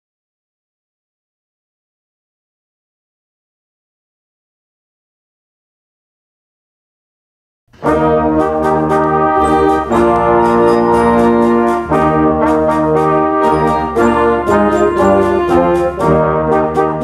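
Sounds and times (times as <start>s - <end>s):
concert band playing a march: 7.8s - 17.0s
drum strokes: 7.8s - 17.0s.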